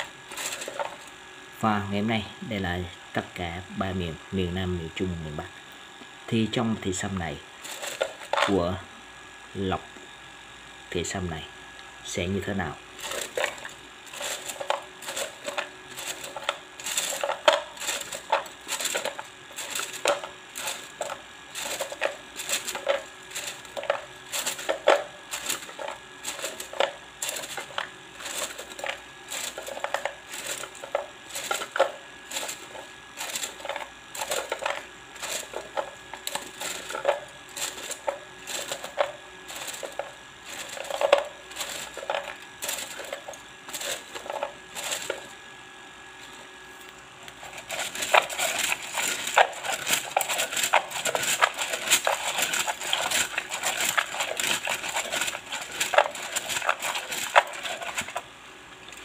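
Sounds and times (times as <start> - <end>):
wooden sticks clacking in a cup: 47.6 - 58.2.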